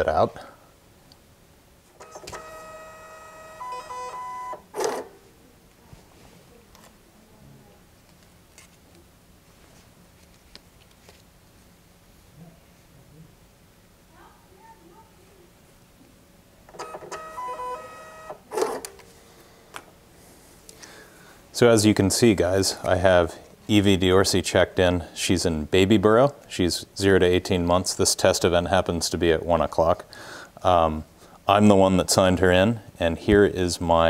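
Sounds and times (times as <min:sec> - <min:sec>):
label printer motor whine: 0:02.0 - 0:05.1, 0:16.7 - 0:18.8.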